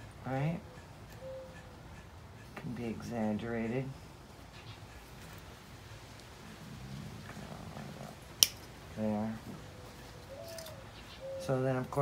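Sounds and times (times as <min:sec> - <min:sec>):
wire cutters snipping wire: 0:08.4 - 0:08.7.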